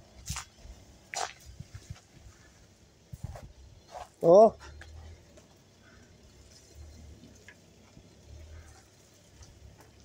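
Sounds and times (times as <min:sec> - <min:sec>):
footsteps on brick paving: 0:00.0 - 0:05.6, 0:07.5 - 0:10.0.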